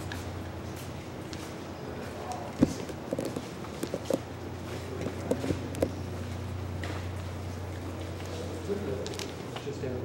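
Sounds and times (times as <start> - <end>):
footsteps on concrete floor: 0.0 - 7.2
steady low hum: 0.0 - 10.0.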